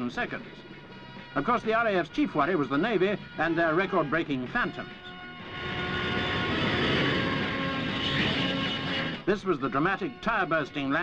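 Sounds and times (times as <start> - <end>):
jet engine rush with whine: 5.3 - 9.3.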